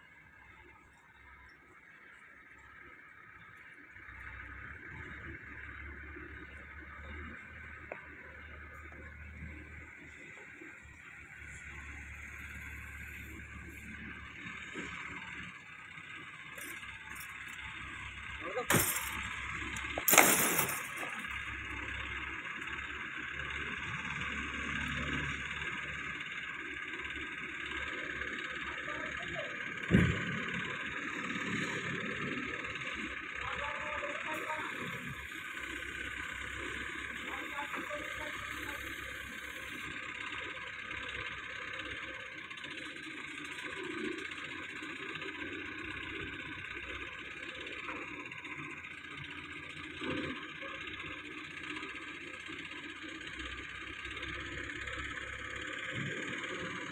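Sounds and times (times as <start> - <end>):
crane diesel engine running: 0.0 - 56.9
sharp metal clanks: 18.6 - 21.3.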